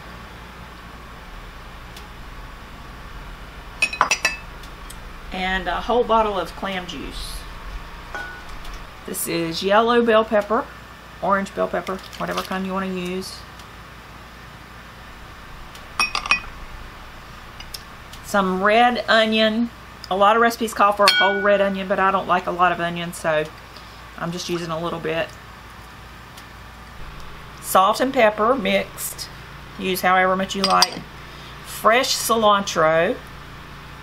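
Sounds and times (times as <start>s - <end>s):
glass bowls clinking: 3.8s - 4.5s, 8.1s - 8.6s, 16.0s - 16.6s, 21.0s - 21.7s, 30.6s - 31.1s
glass knocking on glass: 21.1s - 21.6s.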